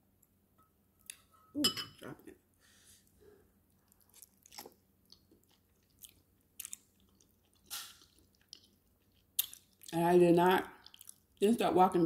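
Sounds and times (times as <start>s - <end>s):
person biting and chewing: 3.9s - 9.9s.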